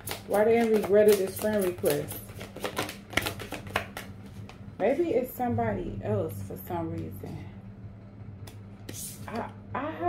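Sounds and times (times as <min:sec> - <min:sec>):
cards being shuffled: 0:00.0 - 0:04.6.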